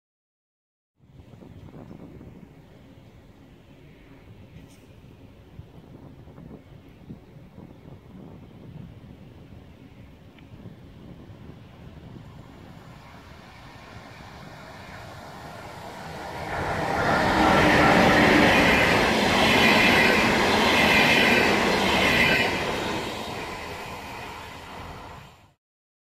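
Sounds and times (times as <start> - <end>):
train wheels rumbling on rail: 10.4 - 25.5.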